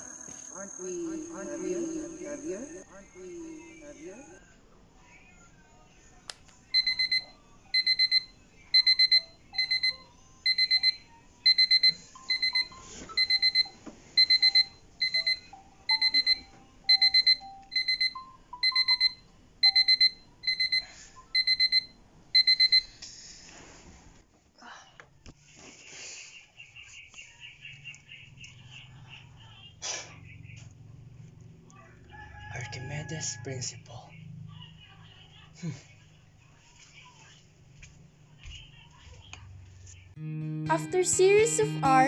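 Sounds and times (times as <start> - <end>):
phone alarm beeping: 0.0 - 4.2, 6.8 - 23.0.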